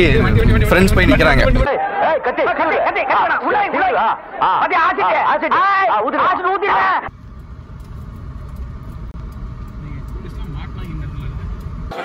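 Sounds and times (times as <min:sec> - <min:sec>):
car engine and road rumble: 0:00.0 - 0:01.7, 0:07.0 - 0:12.0.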